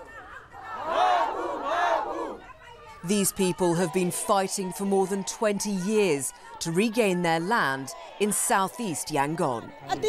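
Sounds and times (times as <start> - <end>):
crowd shouting a slogan: 0.0 - 10.0.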